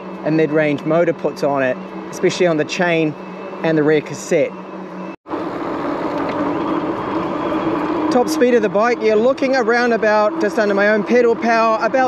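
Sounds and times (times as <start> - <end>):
electric motor hum: 0.0 - 12.0
wind noise: 5.3 - 11.4.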